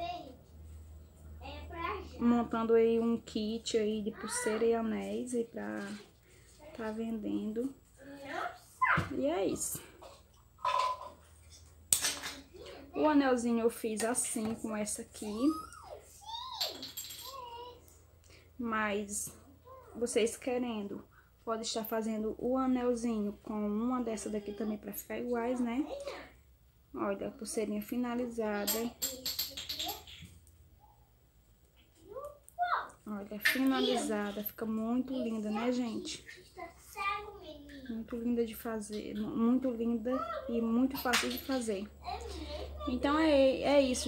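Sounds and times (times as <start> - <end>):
faint room noise: 0.0 - 44.0.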